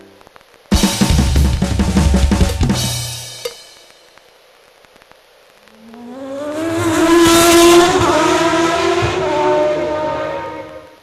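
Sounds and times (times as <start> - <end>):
engine-like hum with rushing whoosh: 5.9 - 11.0.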